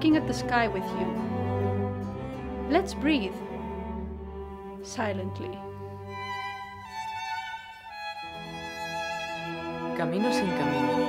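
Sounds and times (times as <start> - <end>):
low sustained strings: 0.0 - 11.0
violin long bowed notes: 0.0 - 11.0.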